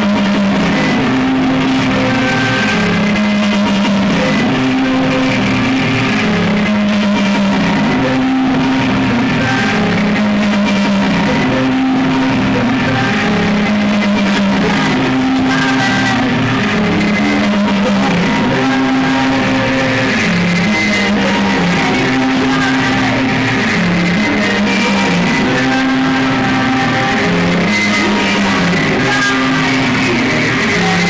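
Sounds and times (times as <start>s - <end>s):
electric guitar: 0.0s - 31.0s
live rock band playing: 0.0s - 31.0s.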